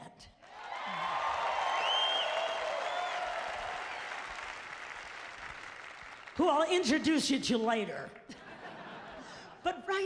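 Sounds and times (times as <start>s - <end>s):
audience applauding: 0.4s - 6.4s.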